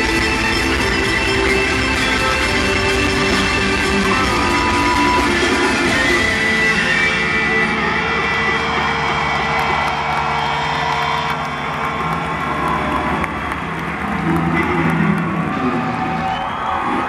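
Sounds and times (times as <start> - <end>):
band playing sustained chords: 0.0 - 16.0
concert crowd noise: 0.0 - 17.0.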